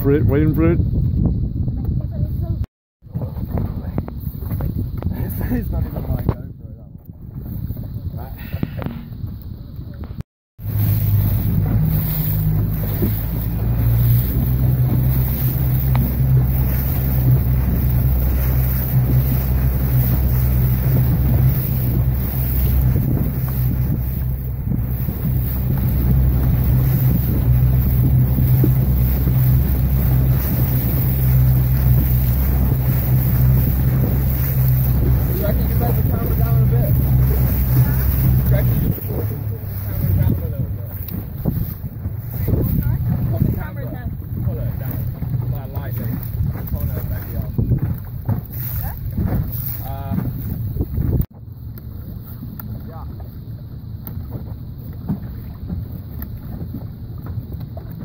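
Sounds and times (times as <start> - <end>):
outboard motor running: 0.0 - 58.0
water noise: 0.0 - 58.0
wind buffeting microphone: 0.0 - 58.0.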